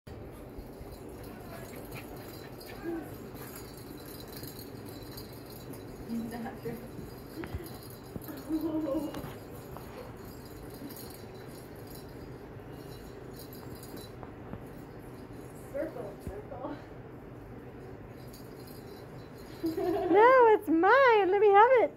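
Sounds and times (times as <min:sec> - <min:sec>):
toy ball rattling and jingling: 0:00.2 - 0:16.8, 0:17.8 - 0:20.7.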